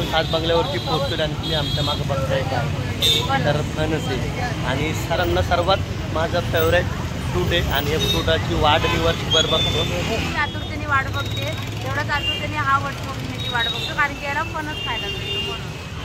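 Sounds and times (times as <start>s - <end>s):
road traffic rumble: 0.0s - 16.0s
voices talking: 0.0s - 16.0s.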